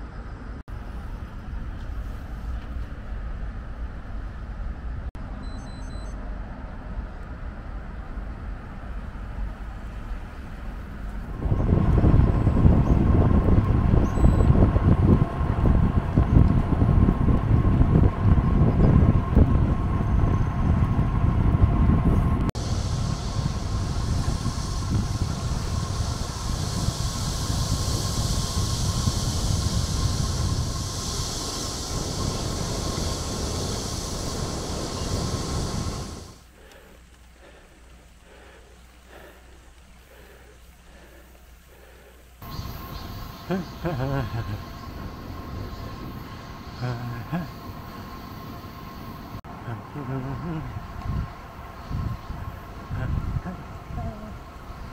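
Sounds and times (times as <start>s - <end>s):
wind rushing over microphone: 9.6s - 36.5s, 42.4s - 54.9s.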